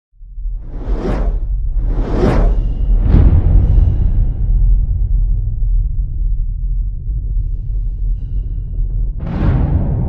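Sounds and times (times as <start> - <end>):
deep rumble: 0.2 - 10.0
whoosh sound effect: 0.7 - 2.8.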